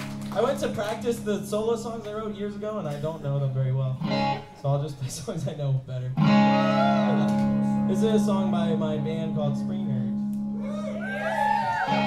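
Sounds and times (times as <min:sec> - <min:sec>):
electric guitar chord ringing: 0:04.0 - 0:04.6, 0:06.2 - 0:10.6.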